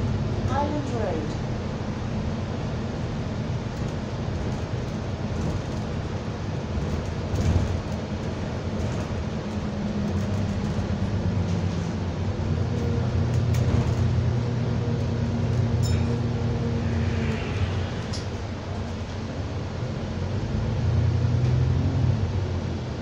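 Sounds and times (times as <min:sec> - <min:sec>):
bus engine and running noise: 0:00.0 - 0:23.0
bus bump: 0:03.6 - 0:16.5.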